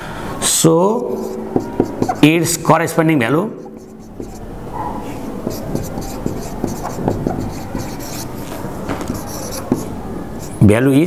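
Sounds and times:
scratching and tapping on board: 1.2 - 2.3, 3.6 - 4.4, 5.4 - 10.6.

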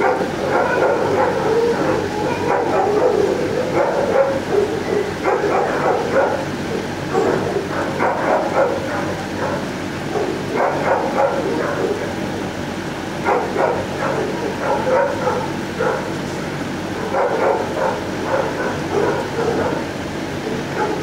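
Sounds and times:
many dogs barking: 0.0 - 21.0.

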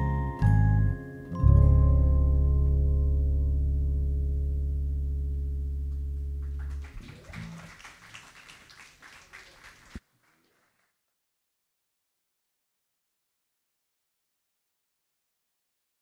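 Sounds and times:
band chord ringing out: 0.0 - 6.6
light applause: 6.4 - 11.0.

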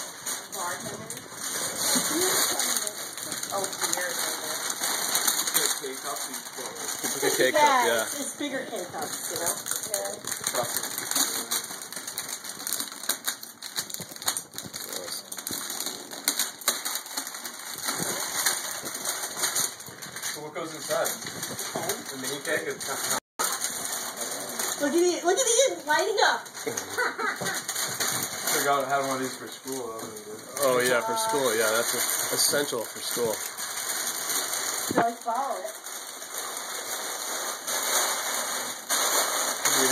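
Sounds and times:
wrapping paper crinkling and tearing: 0.0 - 39.9.

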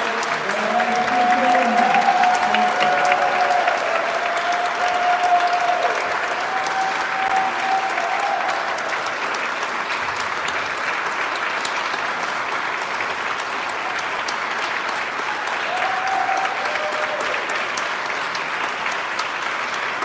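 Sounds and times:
audience applauding: 0.0 - 20.0.

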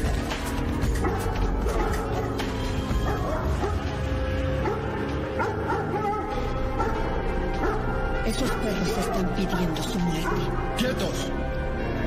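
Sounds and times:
dogs barking and yelping: 0.0 - 10.8
background music: 0.0 - 12.0.

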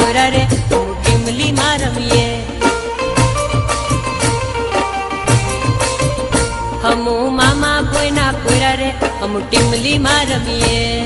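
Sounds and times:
folk dance music drum beat: 0.0 - 11.0.

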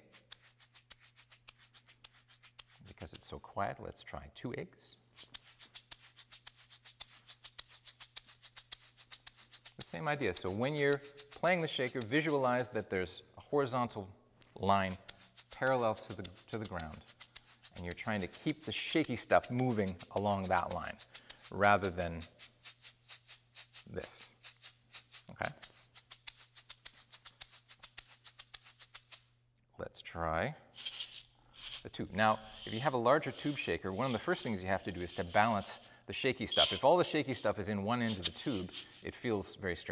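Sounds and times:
egg shakers shaken rhythmically: 0.0 - 3.4, 5.1 - 12.9, 14.7 - 29.3, 30.8 - 39.3.

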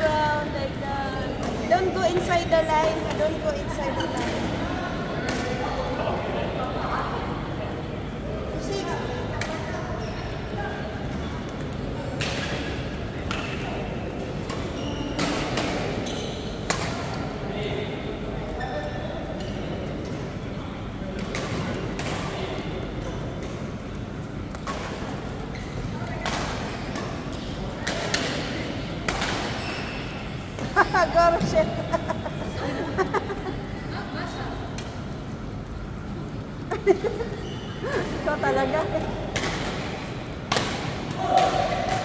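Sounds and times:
rackets striking shuttlecock: 26.2 - 29.6.

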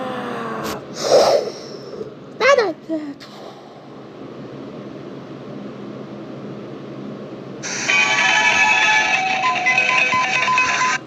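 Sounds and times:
electronic toy tune: 7.9 - 11.0.

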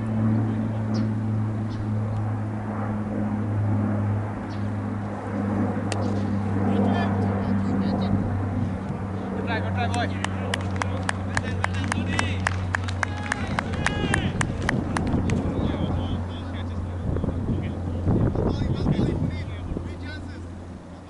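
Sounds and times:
low motor hum: 0.0 - 21.0
sharp claps: 9.8 - 15.4.

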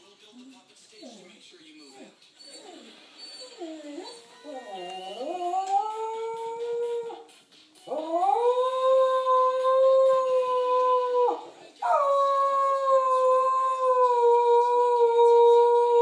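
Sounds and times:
dog howling: 3.5 - 7.3, 7.9 - 16.0.

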